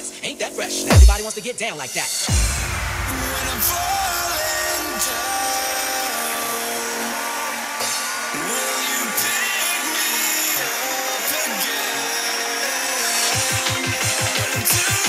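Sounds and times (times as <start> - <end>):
fast pounding kick and bass: 0.9 - 1.3, 2.3 - 5.8.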